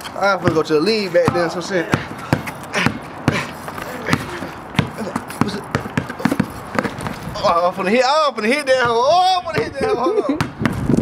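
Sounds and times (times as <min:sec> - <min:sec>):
basketball bouncing on concrete: 0:00.3 - 0:07.6, 0:08.7 - 0:11.0.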